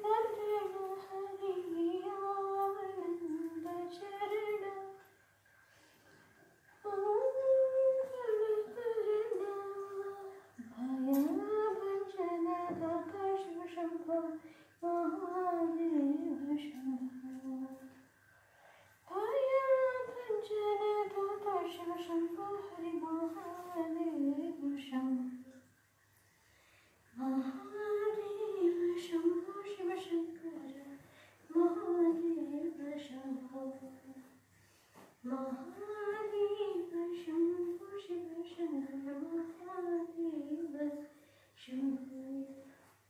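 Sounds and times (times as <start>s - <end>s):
woman singing unaccompanied: 0.0s - 5.0s, 6.8s - 18.0s, 19.1s - 25.6s, 27.2s - 34.3s, 35.2s - 42.8s.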